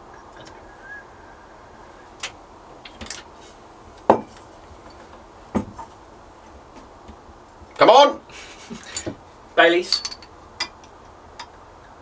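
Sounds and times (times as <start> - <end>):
glass and metal clinking: 9.8 - 10.9.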